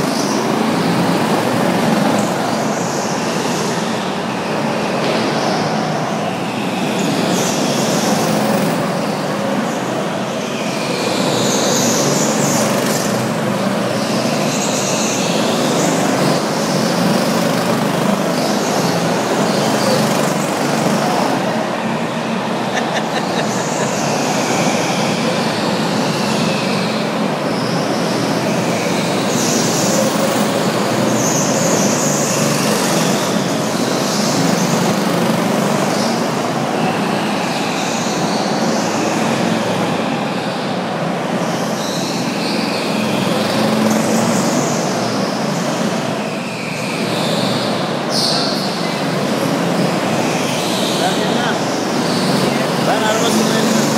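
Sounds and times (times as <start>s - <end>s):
go-kart engines running: 0.0s - 53.9s
high-pitched tyre squeals: 0.0s - 53.9s.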